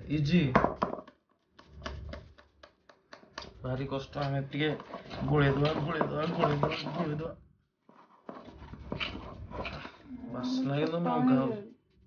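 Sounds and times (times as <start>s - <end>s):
spoon beating batter in steel bowl: 1.0s - 7.3s, 7.9s - 10.0s.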